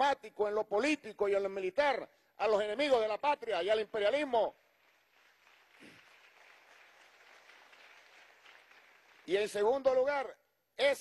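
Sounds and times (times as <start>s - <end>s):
faint crowd applause: 4.6s - 9.8s.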